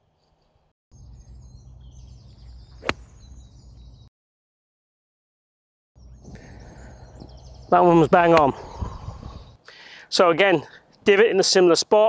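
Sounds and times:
birds chirping: 0:00.0 - 0:04.1, 0:06.0 - 0:11.7
golf club striking ball: 0:02.8 - 0:03.3.

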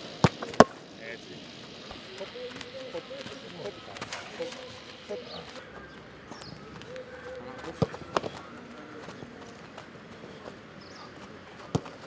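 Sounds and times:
steady outdoor hiss: 0:00.0 - 0:12.0
football boots tapping on turf: 0:04.9 - 0:12.0.

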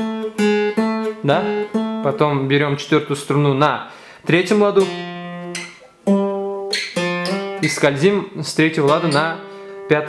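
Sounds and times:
acoustic guitar notes plucked: 0:00.0 - 0:03.6, 0:04.3 - 0:10.0.

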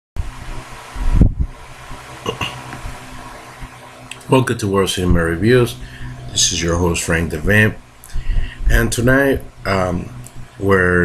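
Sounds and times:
electrical hum and hiss: 0:00.2 - 0:11.0.

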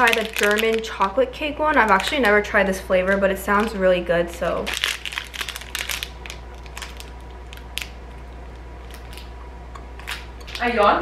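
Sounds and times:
foil wrapper crinkling: 0:00.0 - 0:03.8, 0:04.4 - 0:09.3
steady low hum: 0:00.0 - 0:11.0.

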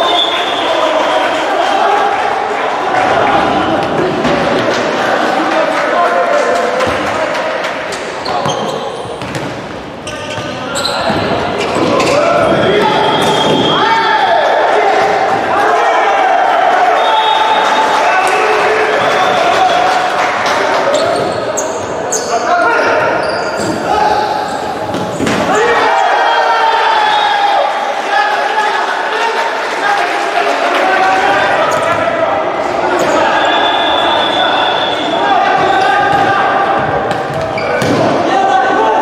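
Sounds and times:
players' voices: 0:00.0 - 0:39.0
sneakers squeaking: 0:08.0 - 0:14.0, 0:20.7 - 0:26.0, 0:31.3 - 0:32.1, 0:32.9 - 0:38.1
ball bouncing on wooden floor: 0:09.2 - 0:09.5.

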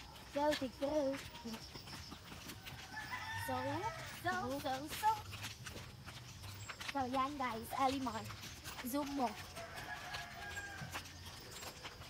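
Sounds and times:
rooster crowing: 0:02.6 - 0:04.4, 0:09.5 - 0:11.4.

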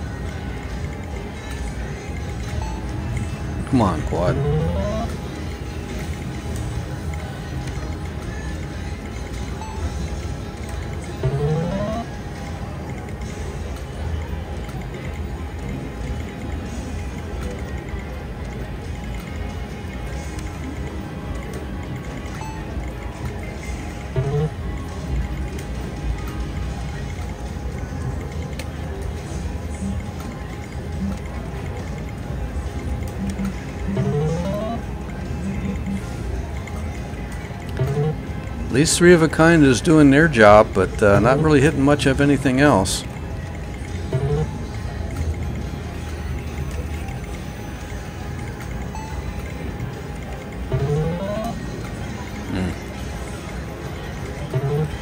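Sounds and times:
gaming machine music and jingles: 0:00.0 - 0:55.0.

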